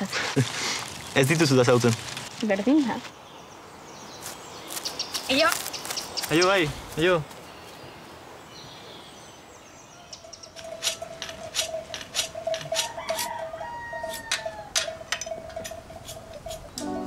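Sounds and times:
shears scraping on sharpening stone: 10.2 - 16.8.

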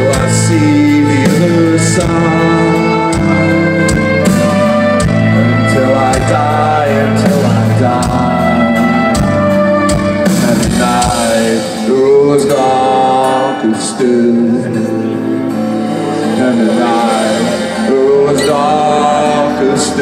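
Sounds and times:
live metal band over loudspeakers: 0.0 - 20.0
person singing: 0.0 - 20.0.

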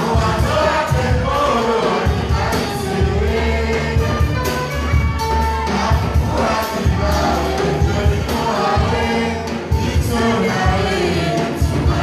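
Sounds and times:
band music over loudspeakers: 0.0 - 12.0
drum strokes: 0.0 - 12.0
voices singing together: 0.0 - 12.0.

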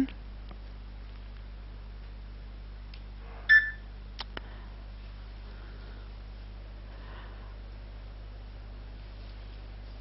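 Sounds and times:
mobile phone beep: 3.5 - 3.8.

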